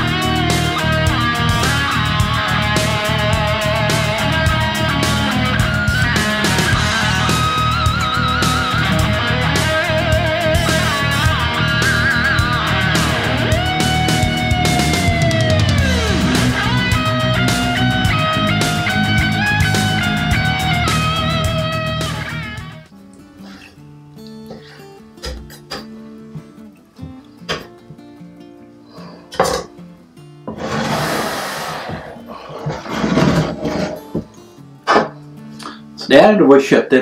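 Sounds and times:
guitar music: 0.0 - 36.2.

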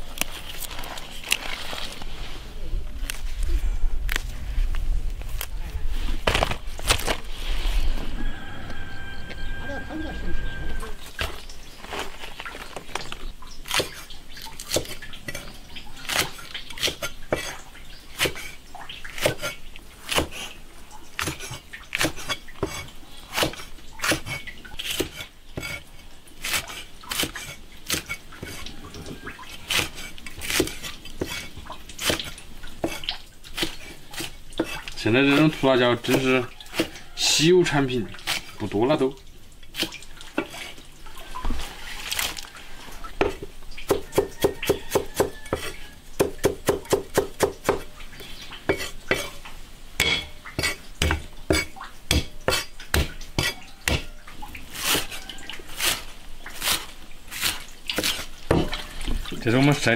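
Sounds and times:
cleaver chopping on wooden board: 43.2 - 47.9, 50.0 - 54.1.

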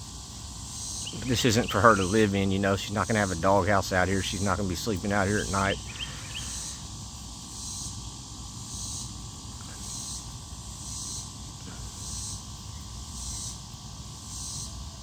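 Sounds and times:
insects buzzing: 0.0 - 15.0.

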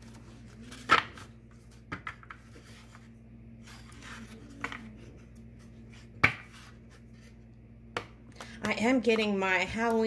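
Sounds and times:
postcards shuffled by hand: 1.5 - 7.4.

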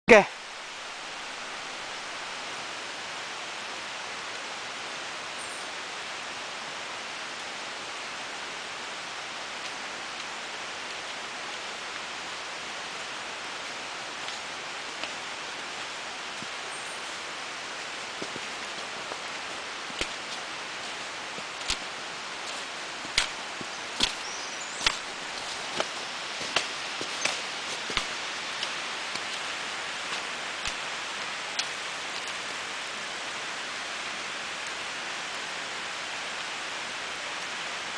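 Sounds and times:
steady outdoor hiss: 0.1 - 37.9.

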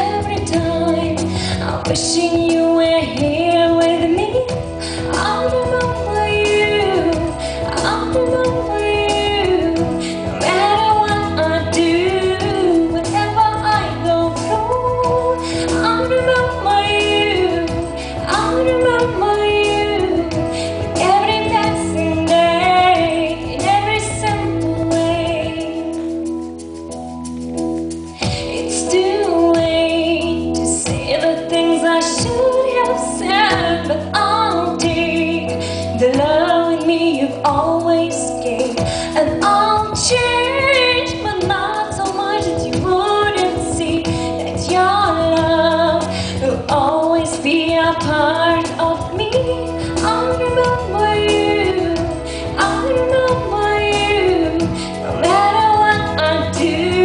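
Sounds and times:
woman singing into a microphone: 0.0 - 26.3, 28.2 - 57.0
instrumental accompaniment: 0.0 - 57.0
instrumental accompaniment sustained chords: 48.6 - 57.0.

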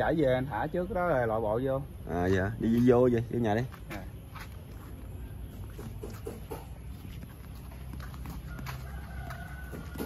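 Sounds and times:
chickens clucking: 5.5 - 10.0
rooster crowing: 8.0 - 10.0.

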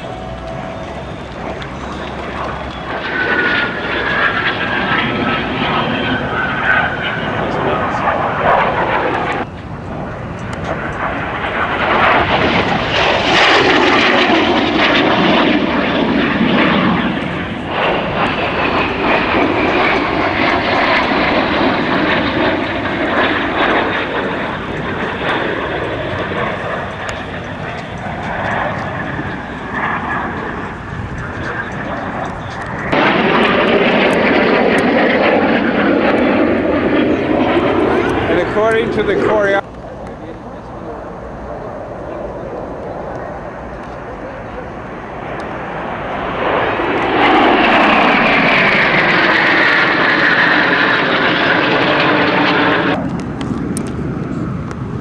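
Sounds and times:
jet planes flying overhead: 0.0 - 55.0.

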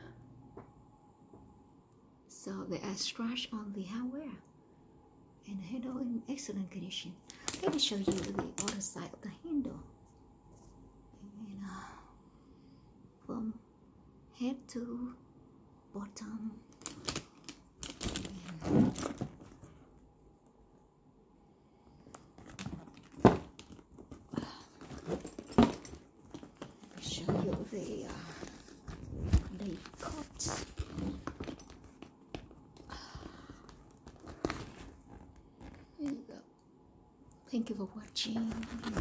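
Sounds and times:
handbag rubbing and knocks: 7.5 - 8.7, 17.8 - 19.7, 22.1 - 32.7, 38.4 - 39.0.

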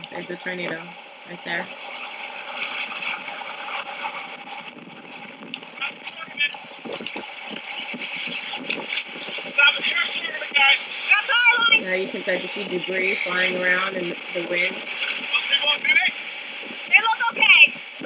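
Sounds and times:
tornado wind rushing: 0.0 - 18.0
raised voices: 9.5 - 16.1.

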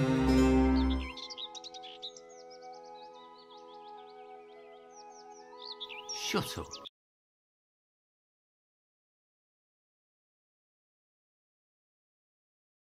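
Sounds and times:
birds chirping and trilling: 0.0 - 6.9
soft background music chord: 0.0 - 6.9.

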